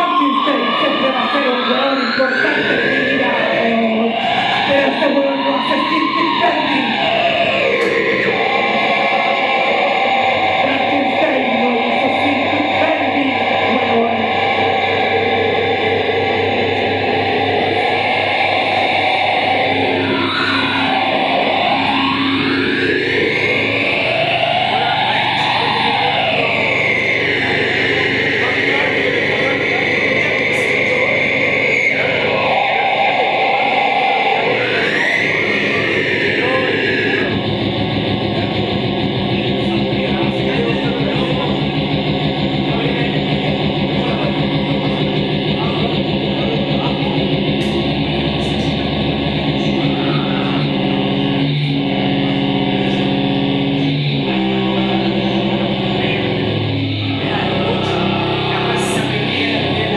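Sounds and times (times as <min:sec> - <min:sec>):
layered drones and noise: 0:00.0 - 0:59.9
sweeping tone: 0:00.0 - 0:59.9.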